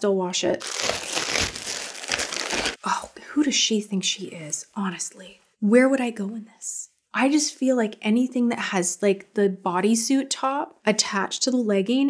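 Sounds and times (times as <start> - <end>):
plastic bag crinkling: 0.6 - 2.8
plastic mailer bag tearing: 0.6 - 2.8.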